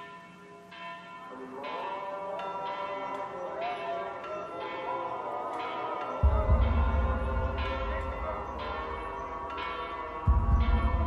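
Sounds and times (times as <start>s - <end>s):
bell tones: 0.0s - 11.0s.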